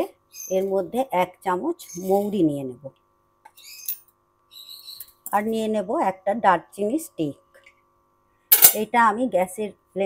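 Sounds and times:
high-pitched bird chirps: 0:00.3 - 0:00.7, 0:03.5 - 0:05.2.

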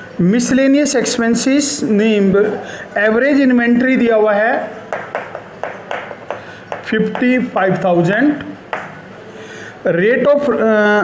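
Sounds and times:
chalk tapping on blackboard: 0:04.8 - 0:07.6, 0:08.7 - 0:09.0.

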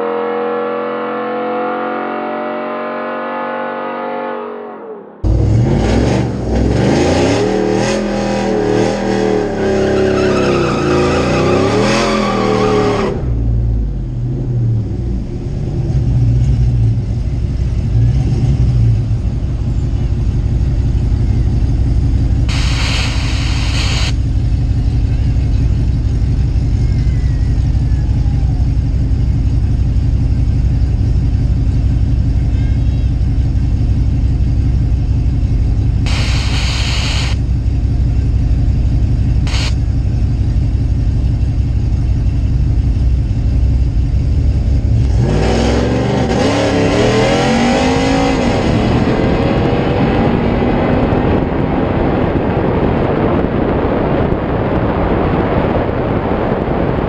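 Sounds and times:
truck engine revving hard: 0:00.0 - 0:15.0, 0:44.8 - 0:57.0
truck engine idling: 0:19.0 - 0:45.1
short hisses: 0:22.5 - 0:24.2, 0:36.1 - 0:37.4, 0:39.5 - 0:39.8.

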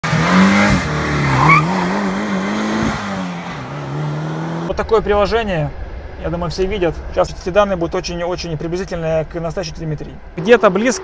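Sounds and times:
turbocharged engine revving: 0:00.0 - 0:11.0.

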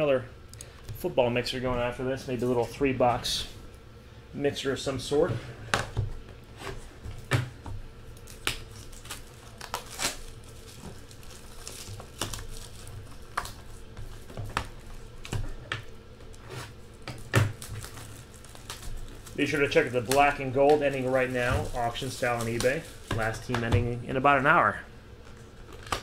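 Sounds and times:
plastic shrink wrap crinkling and tearing: 0:08.1 - 0:15.2, 0:16.3 - 0:23.5.

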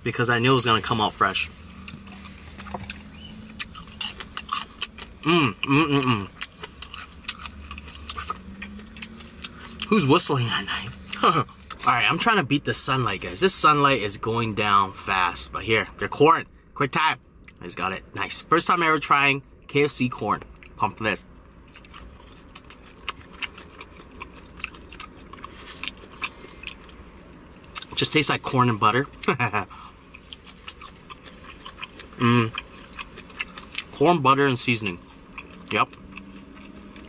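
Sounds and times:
crunchy chewing: 0:00.6 - 0:05.2, 0:06.0 - 0:12.2, 0:21.5 - 0:28.0, 0:29.0 - 0:34.0, 0:34.8 - 0:37.0.

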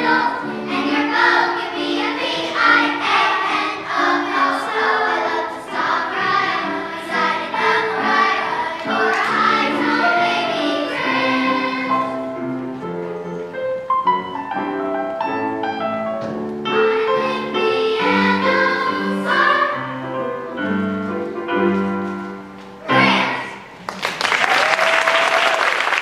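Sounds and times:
children's choir singing: 0:00.0 - 0:12.6, 0:16.7 - 0:21.6, 0:22.2 - 0:23.8.

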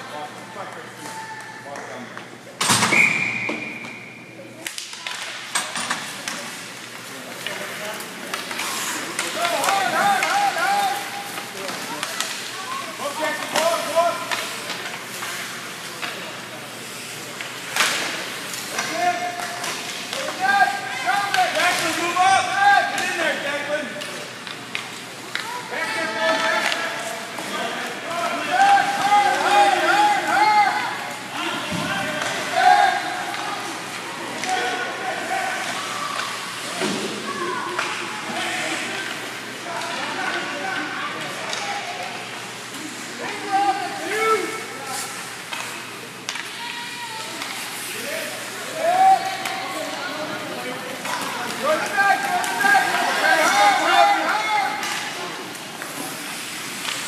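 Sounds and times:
steady hall hum: 0:00.0 - 0:57.0
hockey sticks and puck clacking: 0:04.6 - 0:57.0.

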